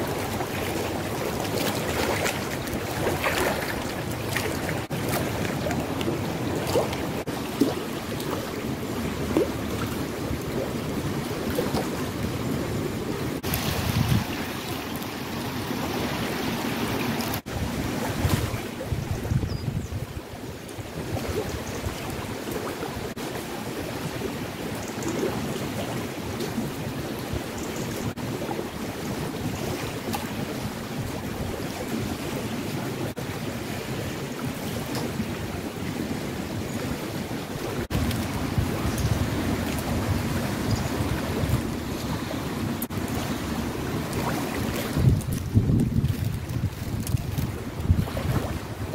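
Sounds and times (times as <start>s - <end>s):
river rushing: 0.0s - 18.9s, 28.2s - 45.8s
wind buffeting microphone: 8.3s - 15.0s, 16.8s - 22.4s, 36.9s - 48.9s.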